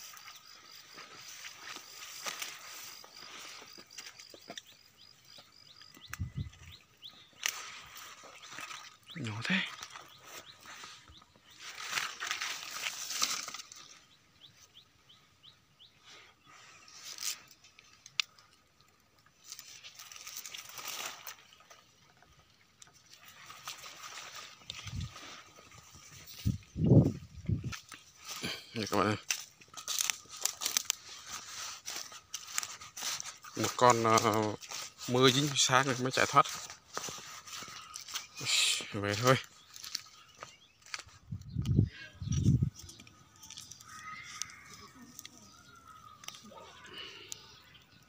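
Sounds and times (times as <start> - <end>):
dry leaves rustling and crunching: 0.0 - 4.9, 7.1 - 14.1, 19.3 - 41.4, 42.3 - 47.6.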